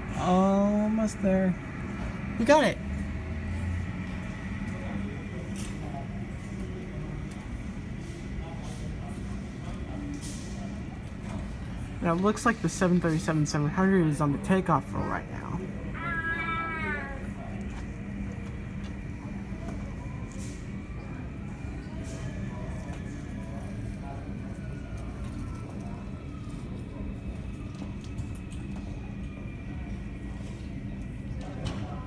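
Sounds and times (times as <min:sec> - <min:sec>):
faint rising and falling whine: 0:00.0 - 0:32.0
jet engines droning: 0:00.0 - 0:32.0.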